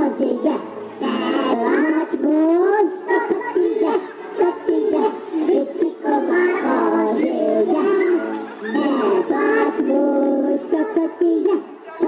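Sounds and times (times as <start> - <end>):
people singing a song: 0.0 - 11.8.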